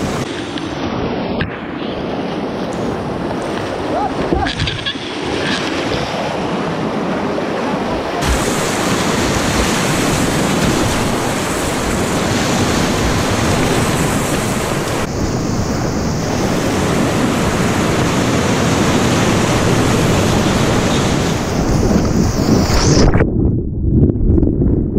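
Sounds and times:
wind noise on microphone: 0.0 - 24.9
whitewater rapids rushing: 1.9 - 22.5
water splashing over boat: 2.9 - 15.1, 15.8 - 22.6.

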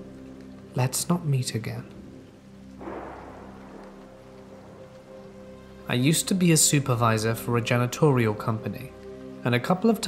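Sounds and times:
soft sustained background music: 0.0 - 10.0
steady rain: 0.0 - 10.0.

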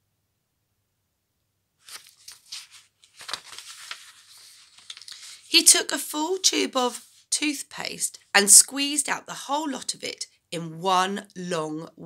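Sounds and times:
book paper rustling: 1.8 - 5.9.

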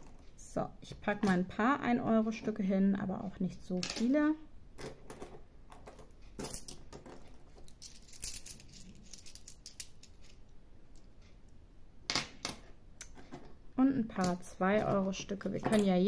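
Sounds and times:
coins clinking: 5.1 - 10.4.

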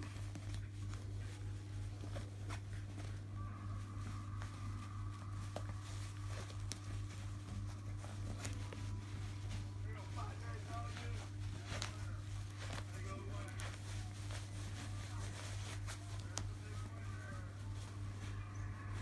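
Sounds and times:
low electrical hum: 0.0 - 19.0
small clicks and rustles: 0.0 - 19.0.

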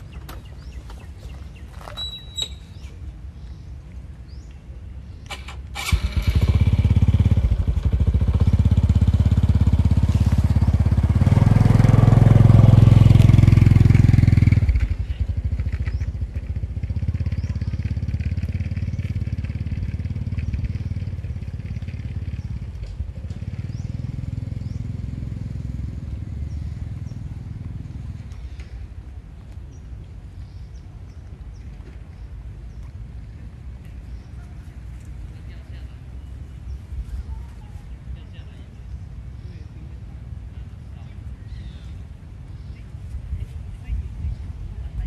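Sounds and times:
engine running: 5.2 - 29.3.

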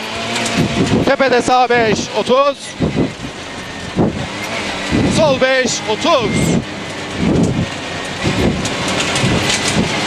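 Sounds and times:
gravel spraying underbody: 0.0 - 10.0
rally car engine revving: 0.0 - 10.0.

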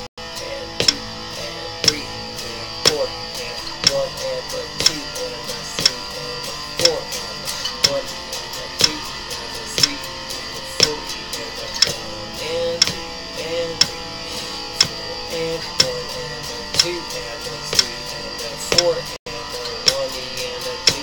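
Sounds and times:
electric guitar strumming: 0.0 - 21.0
metronome clicking: 0.8 - 1.1, 1.7 - 14.0, 14.7 - 19.1, 19.7 - 21.0.

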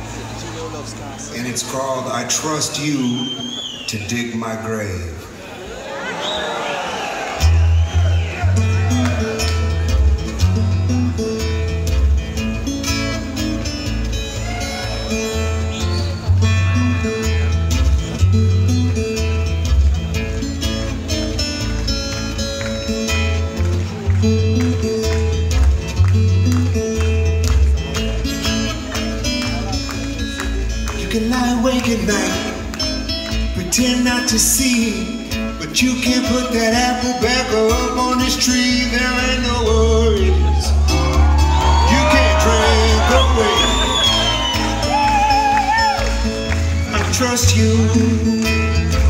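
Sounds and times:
twelve-string acoustic guitar riff: 8.4 - 41.4.

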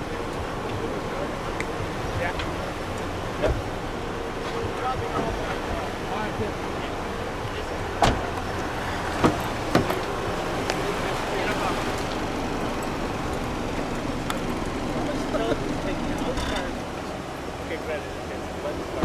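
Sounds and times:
car engine rumbling: 0.0 - 19.0.

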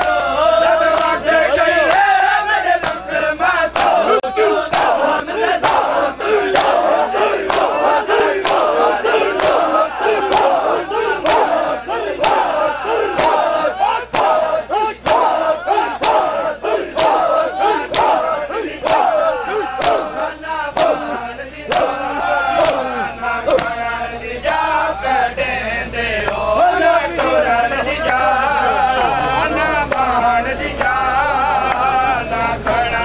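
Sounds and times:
men chanting: 0.0 - 33.0
hands slapping chests: 2.8 - 3.0, 23.5 - 23.8.

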